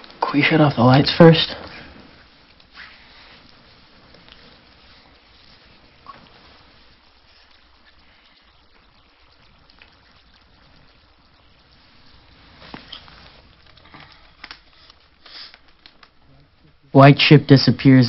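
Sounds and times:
low hiss: 0.0s - 18.0s.

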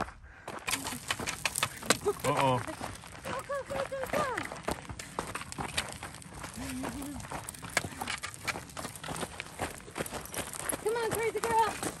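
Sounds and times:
footsteps on gravel: 0.0s - 12.0s
dog paws clicking on gravel: 0.5s - 12.0s.

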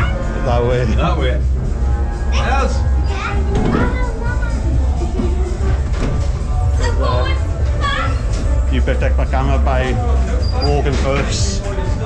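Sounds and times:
loud music with heavy bass: 0.0s - 10.4s.

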